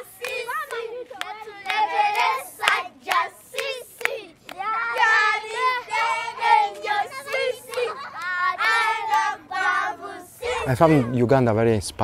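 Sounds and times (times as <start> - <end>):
children singing: 0.0 - 11.2.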